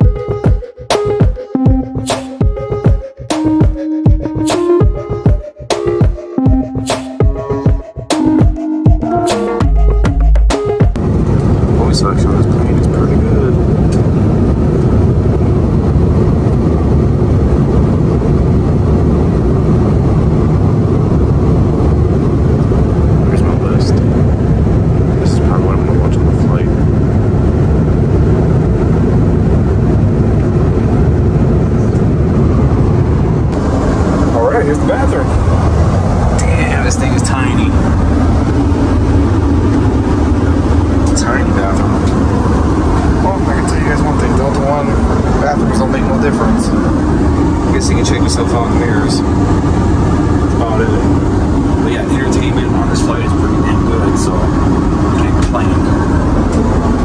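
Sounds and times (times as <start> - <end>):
airliner cabin rumble: 10.9 - 57.0.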